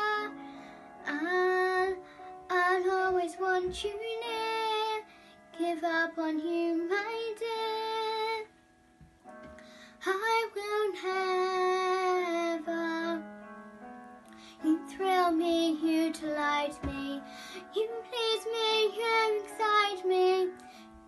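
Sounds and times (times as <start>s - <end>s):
girl singing: 0.0s - 8.5s, 10.0s - 13.3s, 14.4s - 20.8s
soft instrumental accompaniment: 0.0s - 21.0s.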